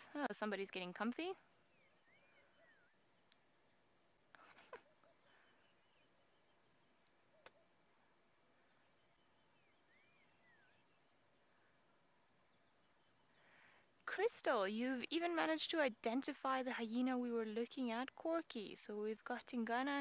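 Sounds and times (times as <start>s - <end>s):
bird whistling: 1.7s - 3.0s, 9.0s - 10.9s.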